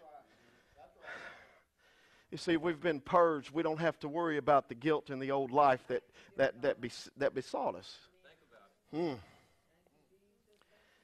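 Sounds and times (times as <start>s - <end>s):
man breathing faintly: 0.2s - 2.4s.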